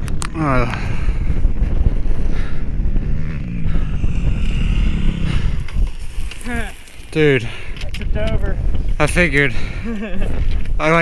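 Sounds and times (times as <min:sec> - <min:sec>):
dirt bike engines idling: 0:00.0 - 0:11.0.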